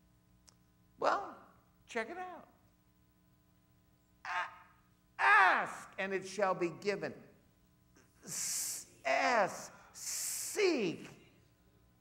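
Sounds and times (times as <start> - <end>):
man shouting: 4.3 - 6.7, 8.3 - 11.1.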